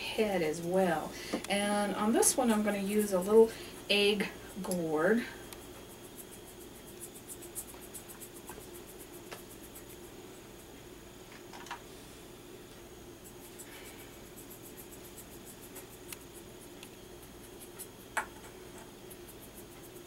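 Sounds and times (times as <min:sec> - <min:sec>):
faint hum: 0:00.0 - 0:20.0
paintbrush scratching on gourd shell: 0:02.2 - 0:03.3, 0:05.6 - 0:10.2, 0:13.2 - 0:18.2, 0:19.0 - 0:20.0.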